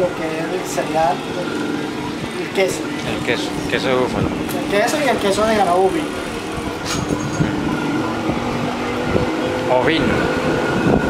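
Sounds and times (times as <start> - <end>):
engine hum: 0.0 - 11.0.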